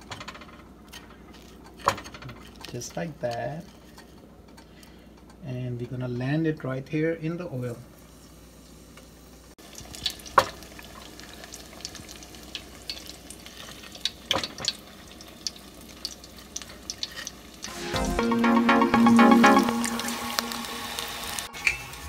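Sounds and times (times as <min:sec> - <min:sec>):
onion ring sizzling in oil: 0:07.9 - 0:17.9
oil crackling and popping: 0:09.0 - 0:17.7
background music: 0:17.7 - 0:22.0.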